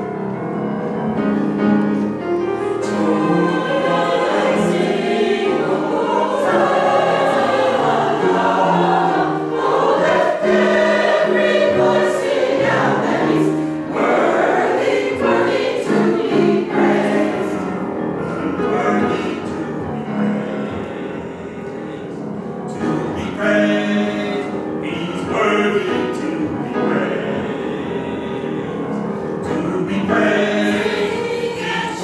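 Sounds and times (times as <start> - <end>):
mixed choir singing in harmony: 0.0 - 32.0.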